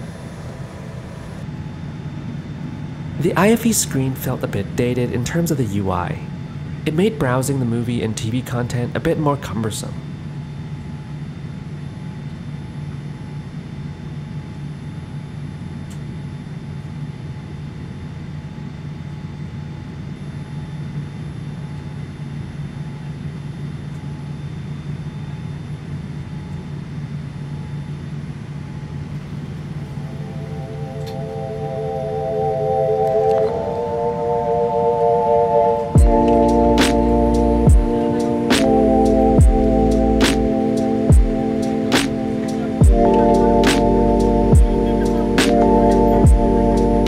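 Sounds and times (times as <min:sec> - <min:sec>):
cabin air conditioning hum: 0:00.0 - 0:47.0
sustained music chords: 0:29.6 - 0:47.0.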